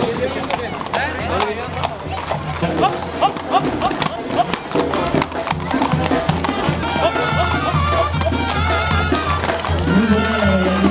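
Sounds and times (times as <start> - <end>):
horse hooves clattering on pavement: 0.0 - 10.9.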